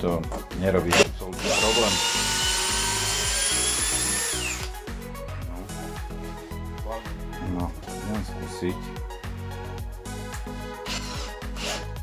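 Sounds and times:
background music: 0.0s - 12.0s
cordless drill motor whine: 1.4s - 4.7s.

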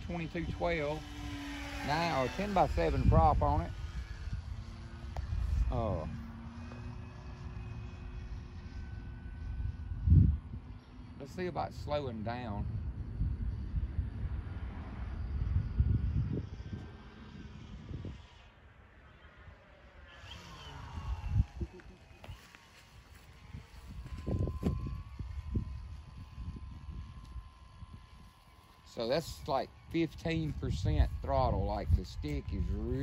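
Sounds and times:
wind buffeting microphone: 0.0s - 18.6s, 20.0s - 33.0s
model airplane motor whine: 0.0s - 33.0s.

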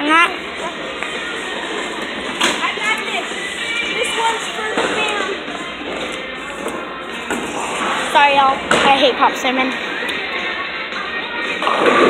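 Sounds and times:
background music: 0.0s - 12.0s
indistinct voices: 0.0s - 12.0s.

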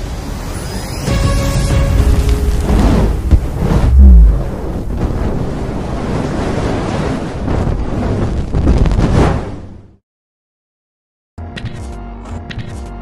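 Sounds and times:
deep boom: 2.0s - 6.2s
noisy wind-like rush: 2.0s - 8.6s.

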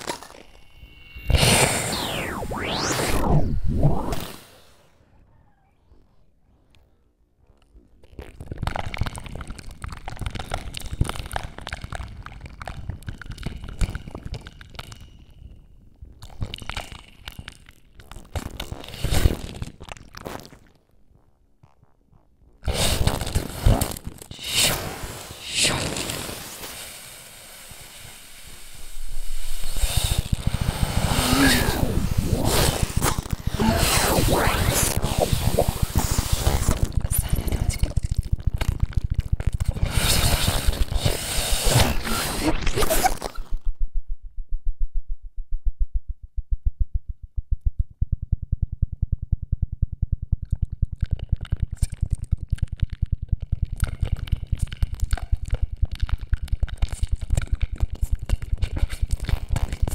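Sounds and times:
fast crackling low pulse: 0.8s - 4.9s, 28.4s - 59.9s.

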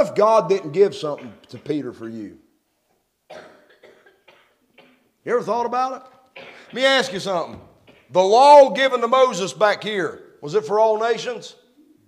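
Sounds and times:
person coughing: 1.2s - 1.9s, 3.3s - 5.1s, 6.4s - 8.1s.

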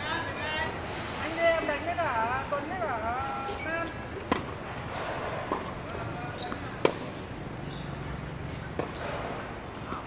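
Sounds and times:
racket hitting tennis ball: 4.2s - 4.7s, 5.4s - 5.8s, 6.4s - 7.2s.

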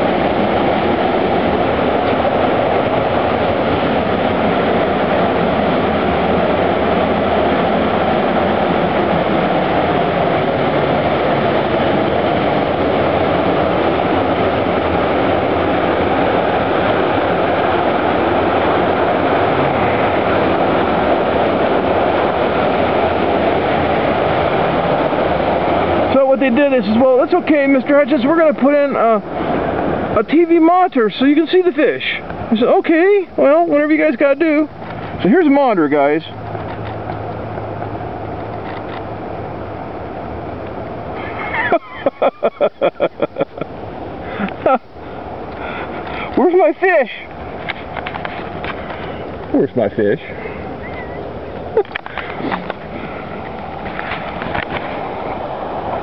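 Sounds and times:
loud steady rushing noise: 0.0s - 56.0s.

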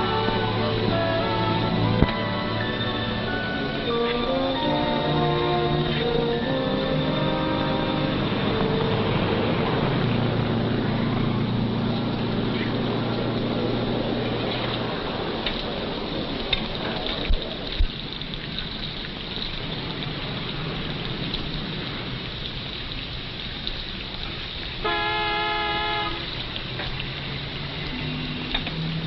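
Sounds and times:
held horn-like tone: 0.0s - 9.5s, 24.8s - 26.3s
steady noisy background: 0.0s - 23.4s.

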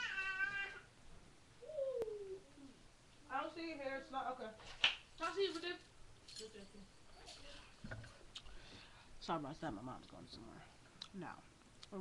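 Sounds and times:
cat meowing: 0.0s - 0.9s.

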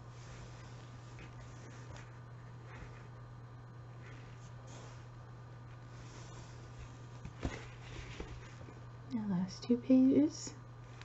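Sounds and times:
steady low hum: 0.0s - 11.0s
books handling noise: 0.1s - 3.3s, 3.9s - 8.9s.

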